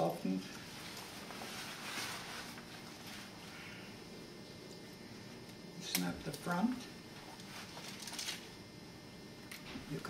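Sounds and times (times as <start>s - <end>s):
strap webbing rustling: 0.7s - 3.5s.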